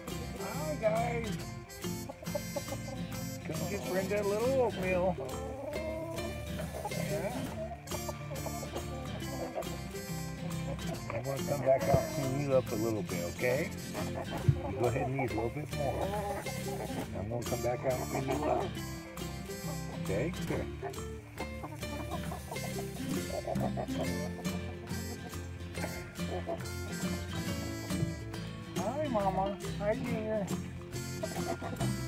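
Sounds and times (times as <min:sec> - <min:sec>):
acoustic guitar music: 0:00.0 - 0:32.0
hen clucking: 0:00.0 - 0:32.0.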